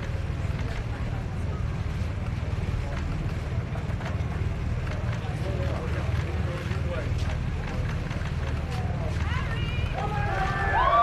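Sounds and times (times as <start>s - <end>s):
faint crowd voices: 0.0s - 11.0s.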